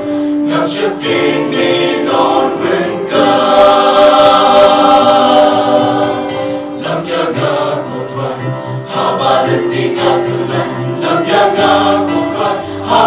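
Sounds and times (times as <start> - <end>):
choir singing a hymn: 0.0 - 13.0.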